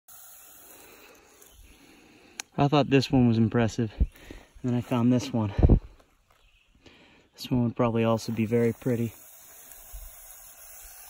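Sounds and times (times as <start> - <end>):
snake hissing: 0.1 - 2.4, 8.1 - 11.0.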